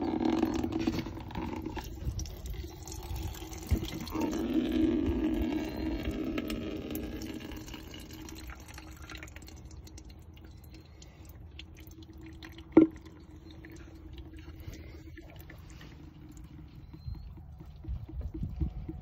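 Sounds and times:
liquid trickling into a pitcher: 0.0s - 19.0s.

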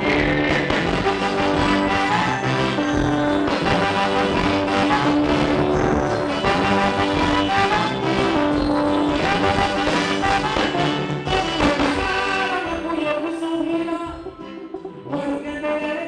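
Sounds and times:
trombone long notes: 0.0s - 14.5s
live band playing: 0.0s - 16.0s.

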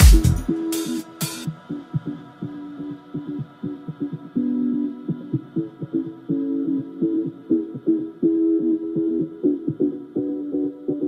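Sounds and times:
plucked bass line: 0.0s - 0.6s.

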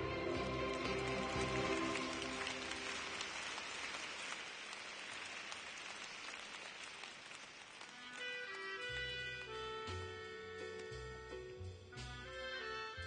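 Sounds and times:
audience applauding: 0.0s - 9.6s.

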